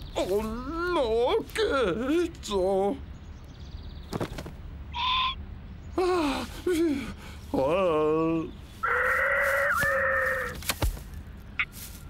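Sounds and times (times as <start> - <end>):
short thud: 4.1 - 4.6
cartoon magpie squawk: 5.0 - 5.4, 8.8 - 10.6.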